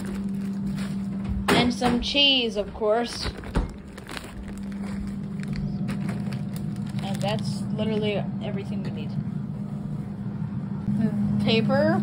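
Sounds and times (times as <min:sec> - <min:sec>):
air fryer fan humming: 0:00.0 - 0:12.0.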